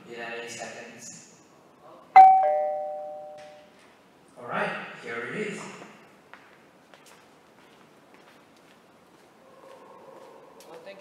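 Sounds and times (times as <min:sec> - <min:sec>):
two-tone doorbell chime: 0:02.2 - 0:03.6.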